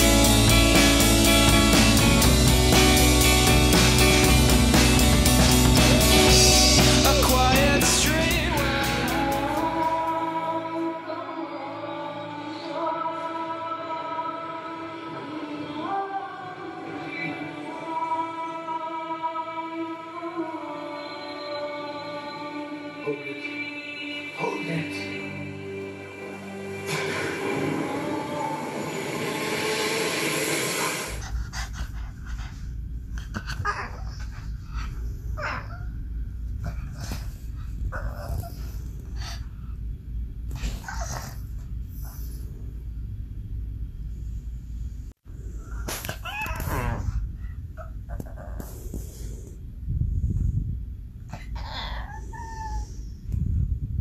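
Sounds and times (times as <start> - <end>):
low rumbling noise: 0.0 - 10.8, 26.1 - 51.6, 52.2 - 54.0
low hum: 0.0 - 11.2
loud steady rushing noise: 26.9 - 31.4
small dog whining: 37.9 - 38.8, 40.6 - 42.2, 45.7 - 48.7, 51.3 - 53.3.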